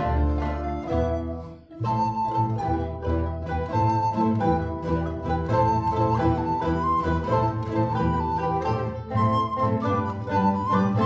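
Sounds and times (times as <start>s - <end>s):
alto recorder melody: 0.0s - 11.0s
plucked string orchestra: 0.0s - 11.0s.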